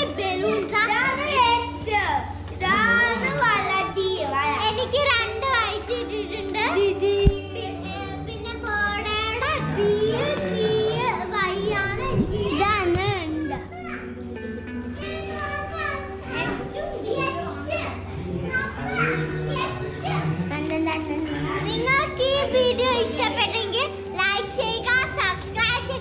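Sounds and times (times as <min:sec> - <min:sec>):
background music: 0:00.0 - 0:26.0
children chattering and shouting: 0:00.0 - 0:26.0.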